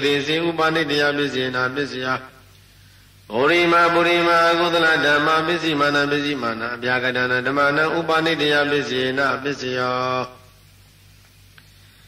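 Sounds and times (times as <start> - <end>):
man chanting: 0.0 - 2.4, 3.3 - 10.5.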